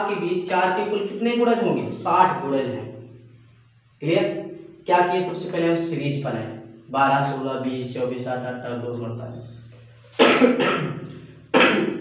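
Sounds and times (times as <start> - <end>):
man coughing: 10.2 - 12.0.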